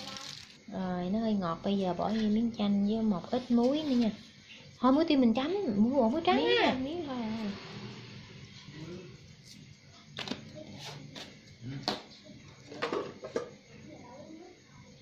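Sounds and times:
salt shaker shaking: 0:00.0 - 0:00.6
kitchen items knocking on tiles: 0:12.7 - 0:13.6.

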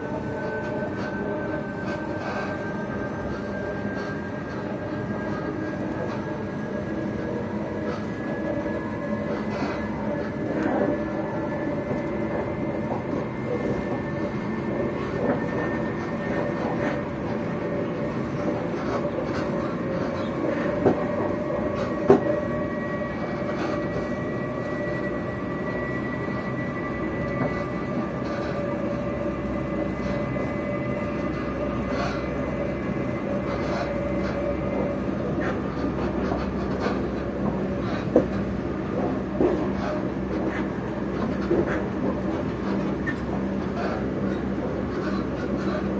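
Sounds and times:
train rumble and hum: 0:00.0 - 0:45.9
sharp clicks of train: 0:00.3 - 0:25.1, 0:25.7 - 0:29.2, 0:29.9 - 0:45.9.

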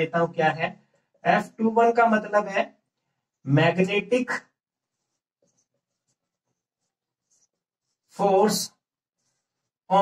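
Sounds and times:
marker squeaking on whiteboard: 0:04.4 - 0:09.9.

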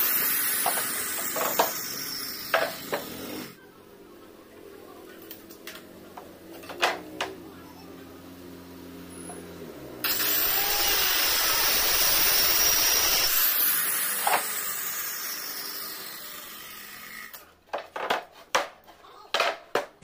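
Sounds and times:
power tool running: 0:00.0 - 0:03.6, 0:08.0 - 0:17.4
plywood boards knocking: 0:17.7 - 0:20.0.

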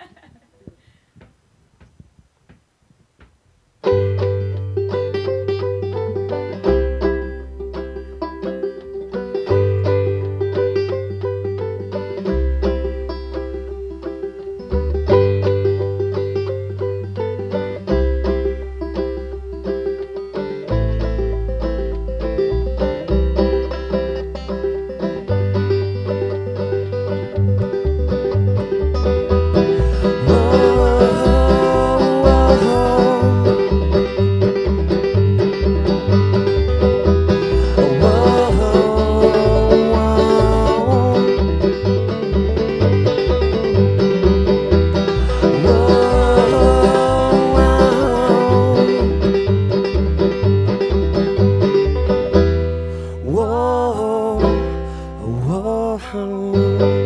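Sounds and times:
upright bass: 0:01.7 - 0:57.0
acoustic guitar: 0:03.7 - 0:57.0
banjo: 0:03.8 - 0:57.0
person singing: 0:29.7 - 0:34.4, 0:37.4 - 0:42.1, 0:45.1 - 0:49.6, 0:52.9 - 0:57.0.

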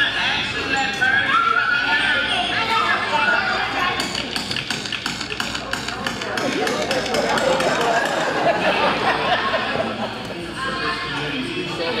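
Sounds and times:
several loud indistinct voices: 0:00.0 - 0:12.0.

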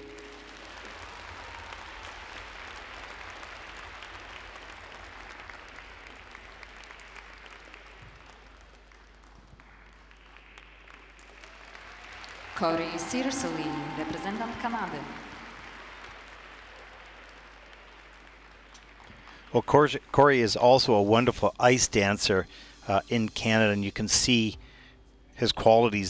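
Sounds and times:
audience applause: 0:00.0 - 0:21.0.

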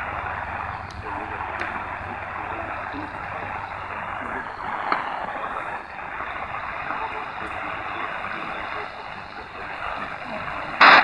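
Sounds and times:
faint radio programme audio: 0:00.0 - 0:11.0
radio static hiss: 0:00.0 - 0:11.0
static clicks: 0:00.0 - 0:11.0.

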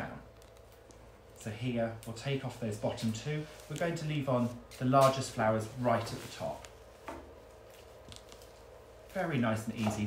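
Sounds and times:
plant stem clicking and crackling: 0:00.3 - 0:02.3, 0:07.6 - 0:08.7.

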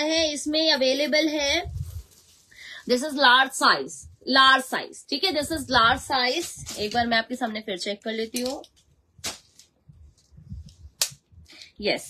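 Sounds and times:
tape measure and fabric handling: 0:05.2 - 0:12.0.

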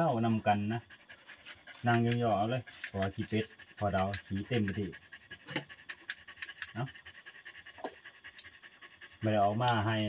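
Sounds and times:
night insects chirring: 0:00.0 - 0:10.0.

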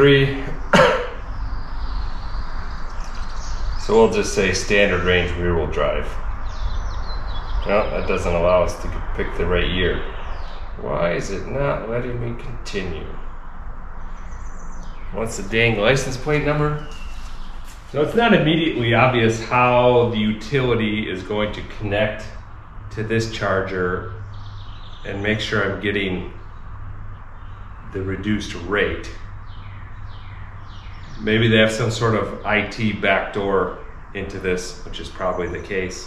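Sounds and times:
faint birds chirping: 0:00.0 - 0:36.0
steady low hum: 0:00.0 - 0:36.0
steady low rumble: 0:00.0 - 0:36.0.

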